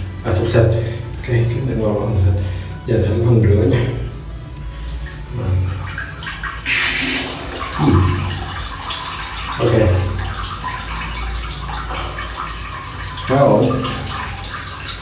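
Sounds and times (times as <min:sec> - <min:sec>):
bidet nozzle spraying water: 0:05.8 - 0:15.0.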